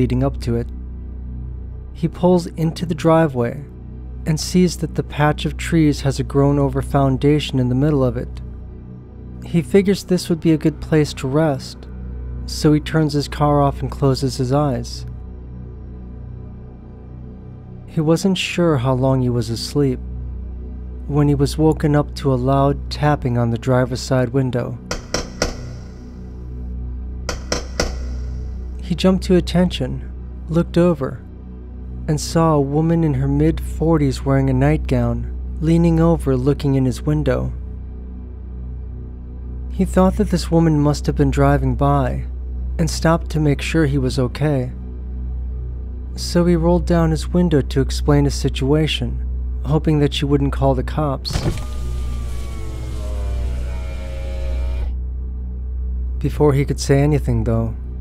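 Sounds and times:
low background music drone: 0.0s - 58.0s
tapping on car window glass: 24.9s - 26.1s, 27.3s - 28.4s
car window motor whine: 51.4s - 55.0s.

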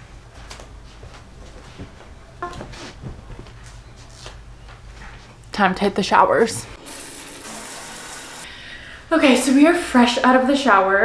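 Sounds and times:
shower spraying water on tiles: 6.8s - 8.5s.

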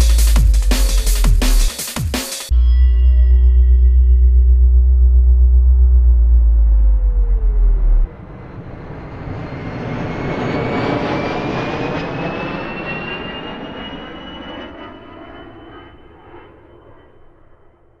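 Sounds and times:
deep bass and synth tones: 0.0s - 1.7s, 2.5s - 8.2s
aircraft flying over: 5.0s - 18.0s.

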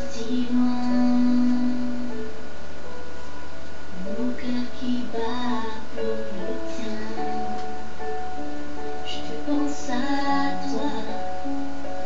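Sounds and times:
girl singing: 0.0s - 2.3s, 4.0s - 12.0s.

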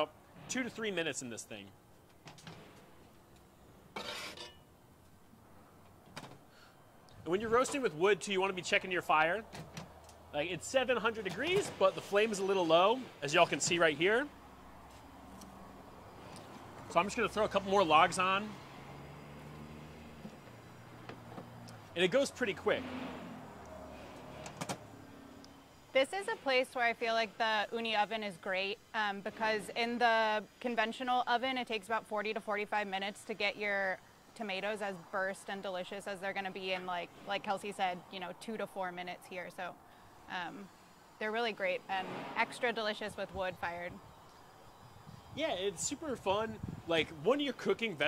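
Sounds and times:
skillet scraping metallic rasp: 4.0s - 4.6s.

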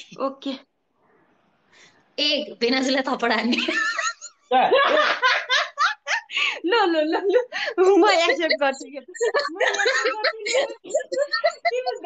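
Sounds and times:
woman laughing hard: 8.3s - 12.0s.

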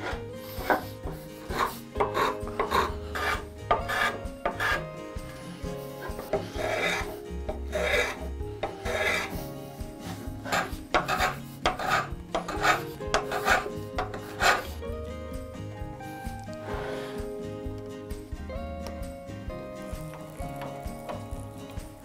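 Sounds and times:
block plane shaving wood: 0.0s - 14.8s.

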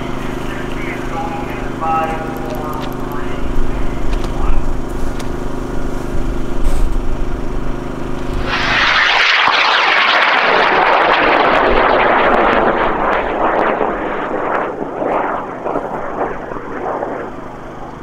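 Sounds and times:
sharp crackles: 0.0s - 7.0s, 8.0s - 18.0s
rocket motor roaring: 0.0s - 18.0s.

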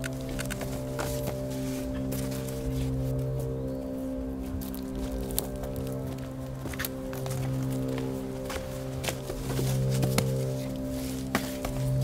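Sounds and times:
low music drone: 0.0s - 12.0s.

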